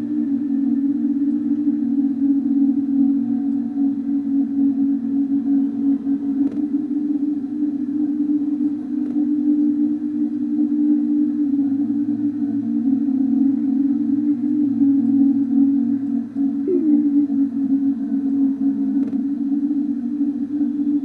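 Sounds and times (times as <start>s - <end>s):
ambient electronic drone: 0.0s - 21.0s.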